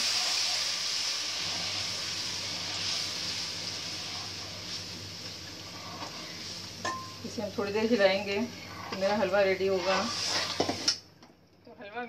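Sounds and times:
syrup sizzling in hot pan: 0.0s - 11.0s.

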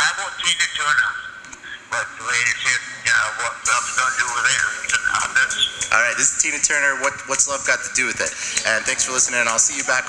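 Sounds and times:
recorded voice over speakers: 0.0s - 10.0s
music over speakers: 2.1s - 10.0s.

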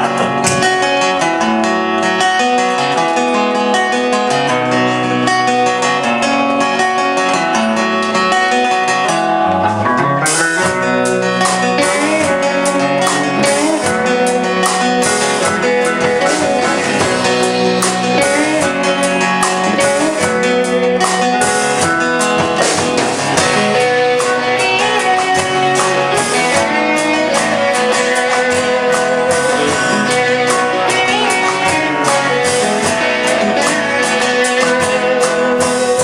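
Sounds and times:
bass line: 0.0s - 36.0s
rock band instrumental: 0.0s - 36.0s
strummed guitars: 0.0s - 36.0s
sharp regular hits: 10.3s - 36.0s.

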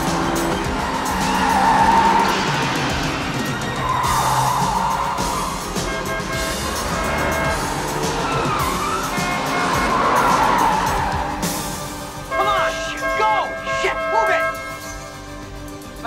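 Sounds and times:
tyres squealing: 0.0s - 15.1s
car engine running hard: 0.0s - 16.0s.

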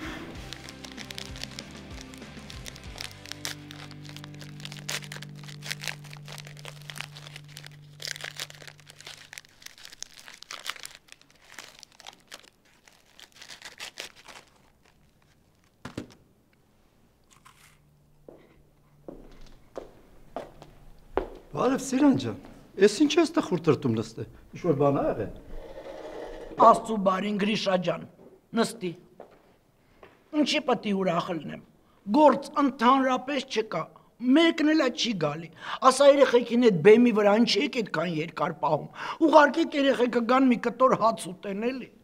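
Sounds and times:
soft background music: 0.0s - 9.8s
plastic wrapper crinkling: 0.3s - 16.2s.

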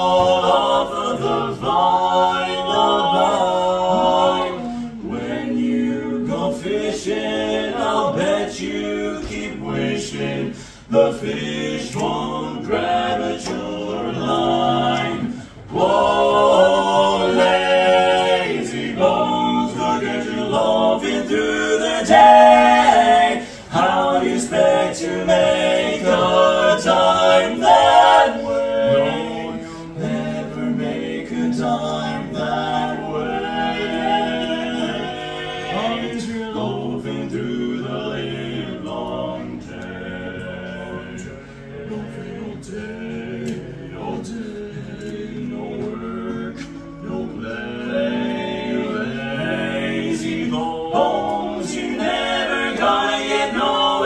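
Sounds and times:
male quartet singing a cappella: 0.0s - 54.0s.

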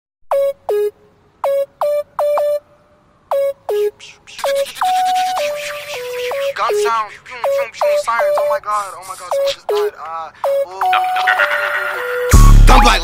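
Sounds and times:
hip-hop beat: 3.3s - 13.0s.

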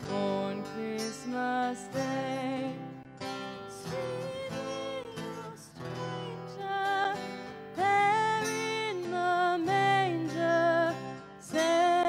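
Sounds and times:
strummed acoustic guitar: 0.0s - 12.0s
woman singing: 0.0s - 12.0s.

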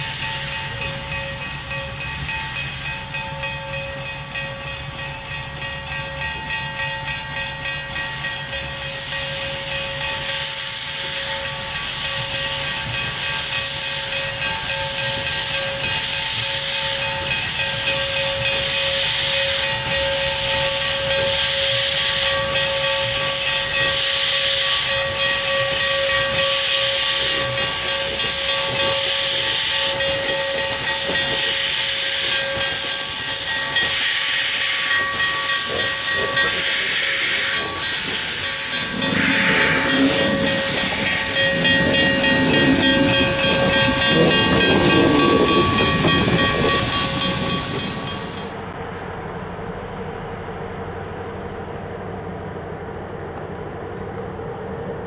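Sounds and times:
steady high tone: 0.0s - 48.7s
steam locomotive exhaust hissing: 0.0s - 49.2s.

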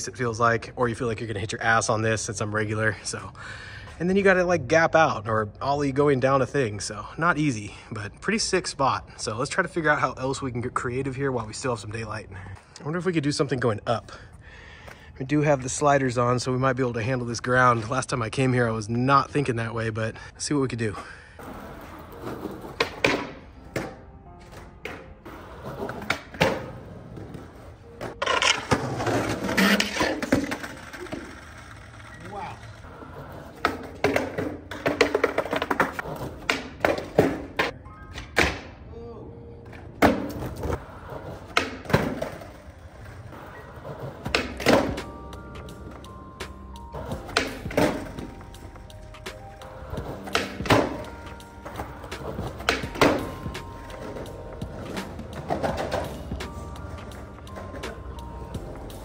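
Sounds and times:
skateboard wheels rolling: 20.7s - 38.7s, 39.6s - 59.0s
skateboard clacks: 21.4s - 38.7s, 40.0s - 59.0s
background music: 21.4s - 59.0s.

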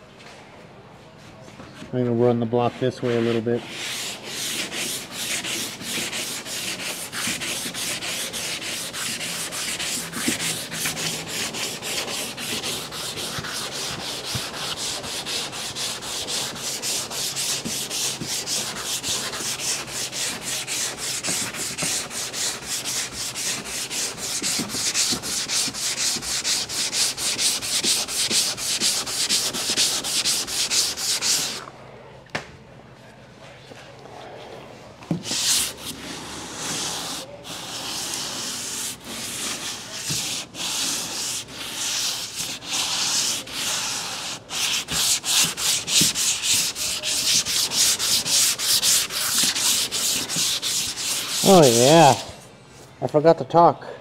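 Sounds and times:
sanding block rasping: 2.7s - 31.6s, 35.2s - 52.3s.

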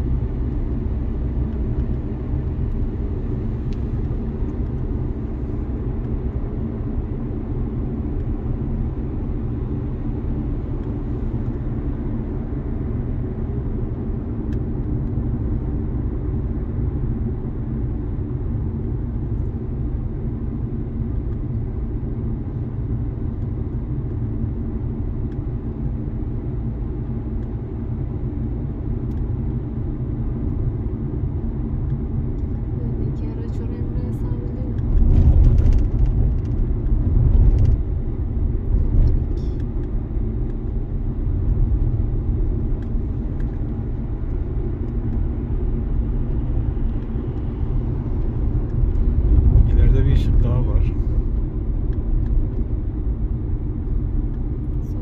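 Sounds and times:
car interior road noise: 0.0s - 55.0s.

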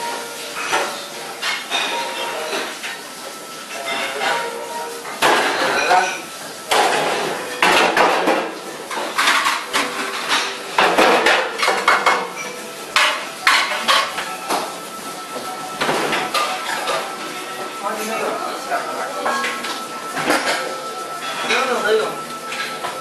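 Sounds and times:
metal pans clattering: 0.0s - 23.0s.

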